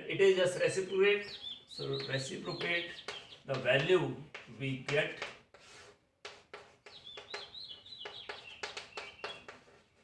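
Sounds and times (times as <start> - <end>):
chalk scraping on blackboard: 2.0 - 10.0.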